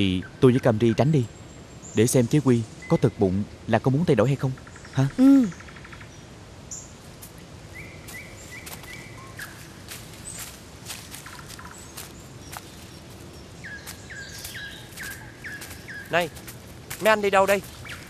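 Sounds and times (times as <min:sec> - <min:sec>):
steady background hiss: 0:00.0 - 0:18.0
man calling out: 0:16.1 - 0:16.4, 0:17.0 - 0:17.7.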